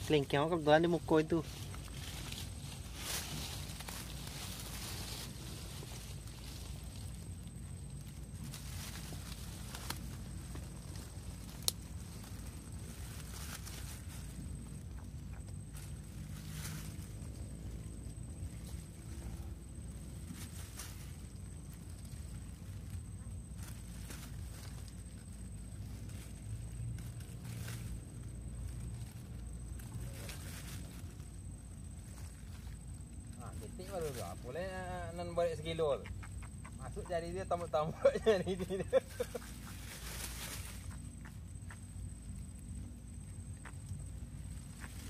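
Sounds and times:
steady low rumble: 0:00.0 - 0:45.0.

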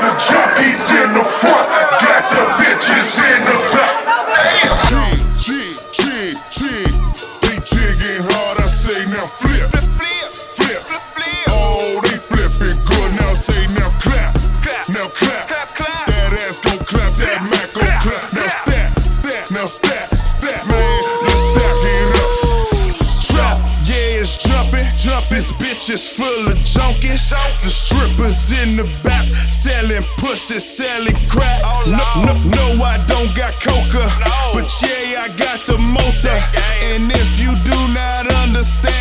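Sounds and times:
person rapping: 0:00.0 - 0:39.0
heavy bass beat with drums: 0:04.7 - 0:39.0
hi-hats: 0:04.8 - 0:39.0.

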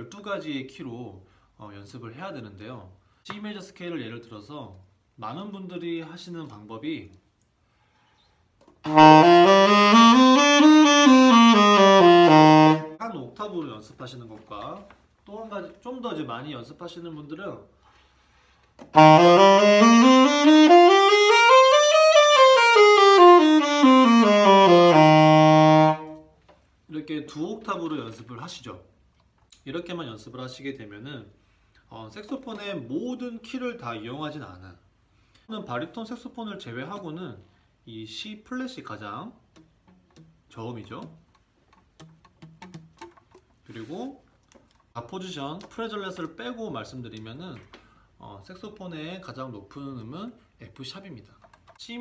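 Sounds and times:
alto saxophone playing a scale: 0:08.8 - 0:13.0, 0:19.0 - 0:26.3.

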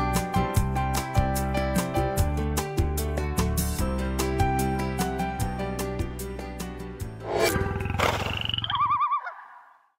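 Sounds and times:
background music: 0:00.0 - 0:08.0
warbling electronic sting: 0:07.2 - 0:09.3.

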